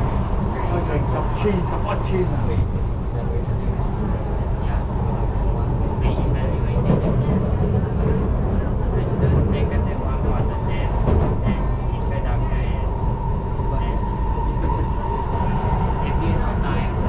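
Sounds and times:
constant train hum: 0.0 - 17.0
train wheels rumbling on rail: 0.0 - 17.0.

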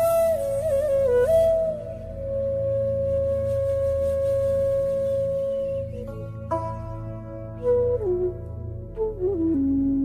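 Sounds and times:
bamboo flute long note: 0.0 - 6.7, 7.5 - 10.0.

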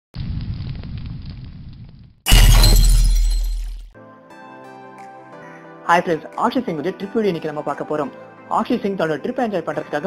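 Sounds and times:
low rumble with crackles: 0.2 - 2.2.

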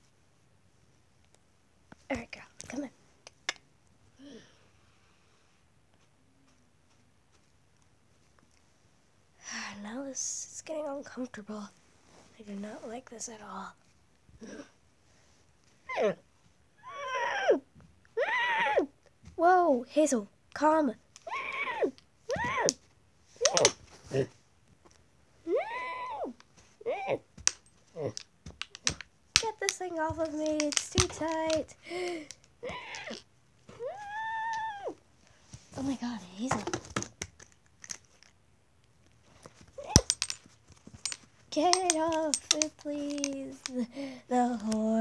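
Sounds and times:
child imitating horse whinny: 16.8 - 19.0, 21.3 - 22.7, 25.4 - 27.2, 32.6 - 33.2
plastic toy clicks and taps: 28.2 - 31.7, 41.0 - 43.8.

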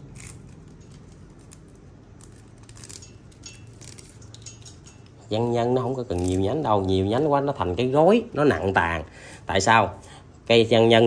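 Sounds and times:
twig snapping: 0.0 - 4.3
hands handling leafy branches: 0.0 - 8.9
steady low hum: 0.0 - 11.0.

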